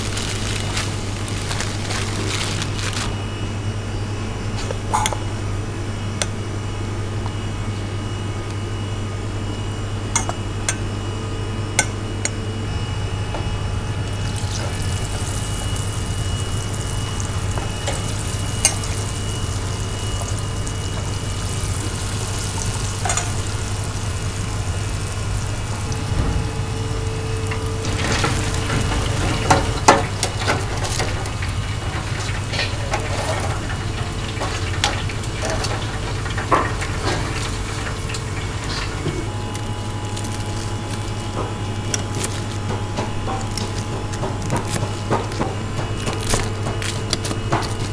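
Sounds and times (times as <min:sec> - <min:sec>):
meat sizzling in deep fryer: 0:00.0 - 0:03.8, 0:13.8 - 0:47.9
metal tongs clinking on basket: 0:23.0 - 0:23.4.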